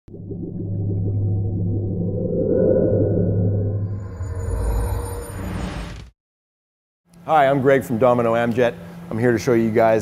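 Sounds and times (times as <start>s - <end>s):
low synthesized drone: 0.1s - 5.1s.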